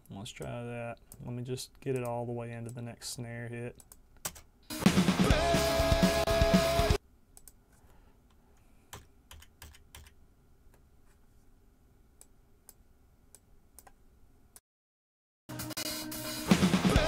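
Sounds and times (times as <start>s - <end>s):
drum kit with guitar note: 4.7s - 7.0s, 15.5s - 17.0s
computer keyboard clicks: 8.9s - 10.2s.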